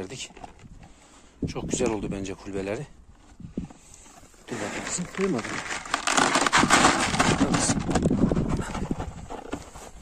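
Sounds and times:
kibble rattling into plastic bucket: 4.5 - 9.7.

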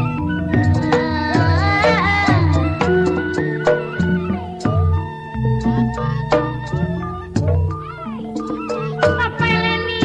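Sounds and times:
pitched melodic line: 0.0 - 10.0.

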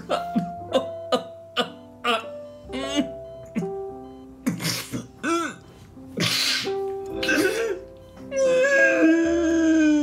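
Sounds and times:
sustained background music: 0.0 - 10.0
man sobbing: 5.2 - 5.6, 7.2 - 10.0.

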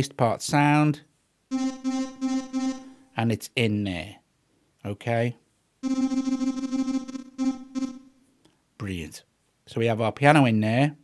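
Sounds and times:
piano notes: 1.5 - 3.1.

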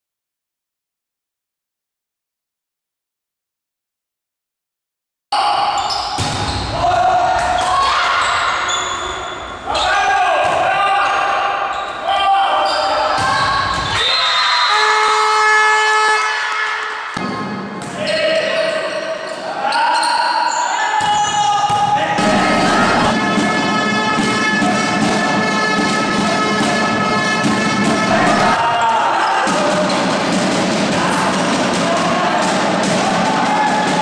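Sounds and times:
volleyball hit and bouncing: 6.2 - 6.7, 25.8 - 28.6
voices shouting and chanting: 6.7 - 15.0, 17.9 - 34.0
steady held tone: 22.2 - 23.3.

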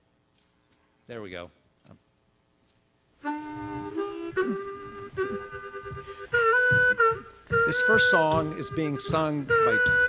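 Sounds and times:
harmonica playing notes and chords: 3.2 - 10.0.

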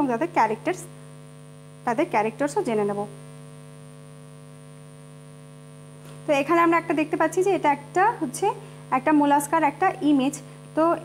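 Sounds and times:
electrical hum: 0.0 - 11.0
faint high whine: 0.0 - 11.0.

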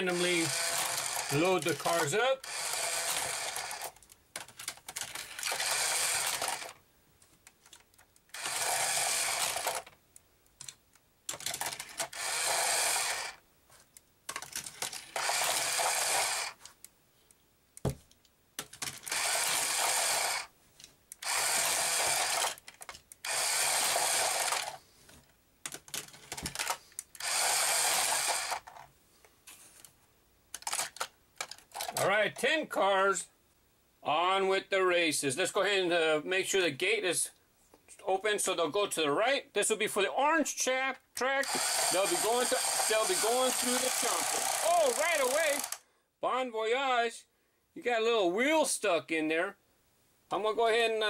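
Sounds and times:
motorized toy lift running: 0.0 - 4.0, 5.1 - 6.8, 8.3 - 9.9, 11.5 - 13.4, 14.8 - 16.6, 19.0 - 20.5, 21.2 - 22.6, 23.2 - 24.8, 26.3 - 28.8, 41.4 - 45.8
small plastic clicks: 2.8 - 12.7, 13.9 - 17.0, 17.8 - 28.9, 29.8 - 32.0, 42.6 - 45.8.

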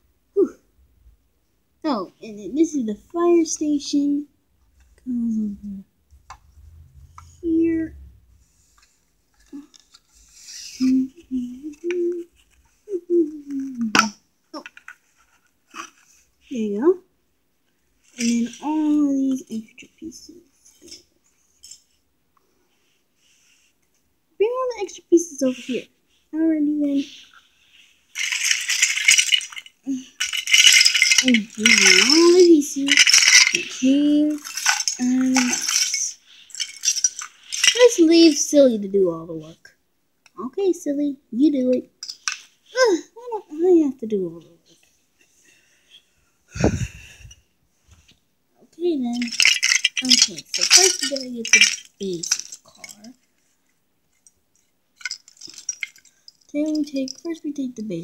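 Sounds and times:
plastic toy pieces rattling: 13.3 - 16.0, 28.1 - 38.6, 41.7 - 42.5, 49.0 - 53.1, 54.2 - 58.0.

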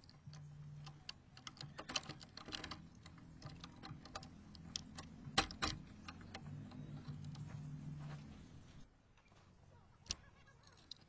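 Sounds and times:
metal door handle clicks and taps: 0.0 - 7.4.

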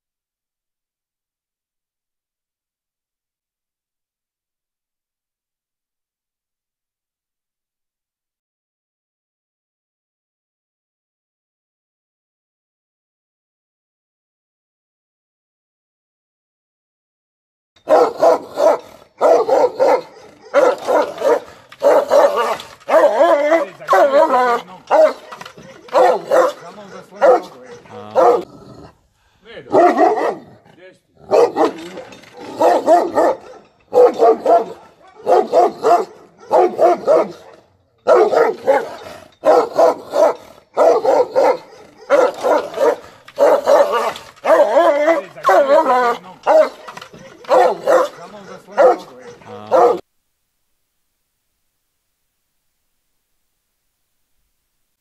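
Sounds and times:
dogs barking: 17.8 - 28.5, 29.7 - 30.6, 31.2 - 50.0.

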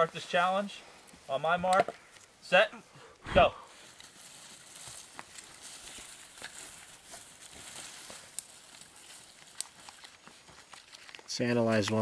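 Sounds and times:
hands rustling dry twigs: 0.0 - 12.0.

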